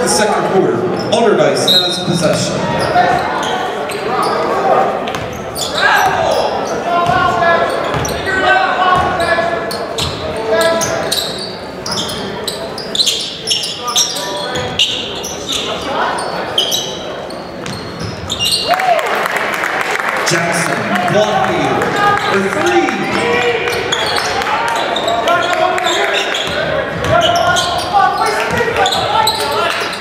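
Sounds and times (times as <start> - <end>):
people calling out: 20.5 - 30.0.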